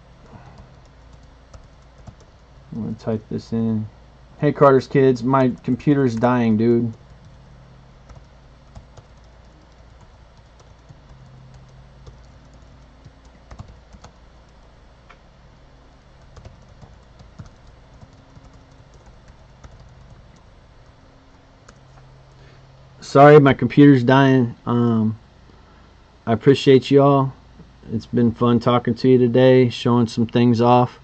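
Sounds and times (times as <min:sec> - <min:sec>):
laptop keyboard typing: 0:00.3 - 0:02.4, 0:05.4 - 0:07.4, 0:08.0 - 0:14.8, 0:16.1 - 0:22.4.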